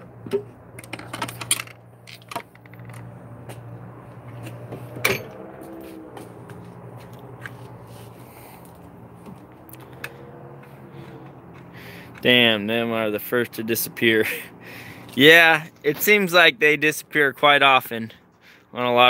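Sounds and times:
metal tools clicking and clinking: 0:00.8 - 0:03.1.

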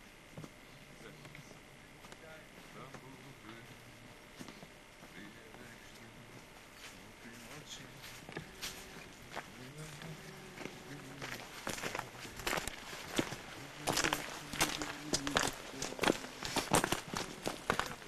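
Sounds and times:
footsteps crunching on leaves: 0:04.4 - 0:18.0.

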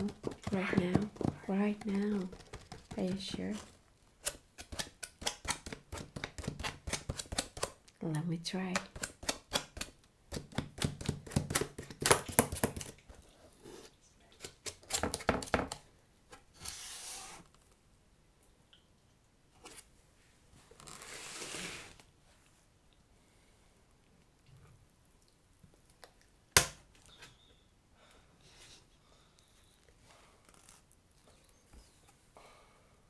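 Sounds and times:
fingertips tapping on cardboard: 0:00.0 - 0:03.6.

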